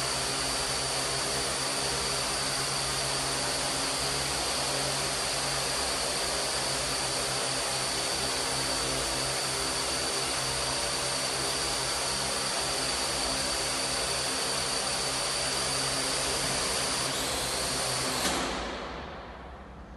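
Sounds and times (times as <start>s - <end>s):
drone propellers whirring: 0.0s - 19.8s.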